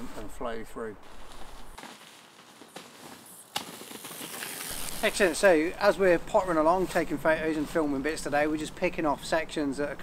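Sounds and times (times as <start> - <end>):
bike tyres crackling on leaves: 1.0 - 7.8.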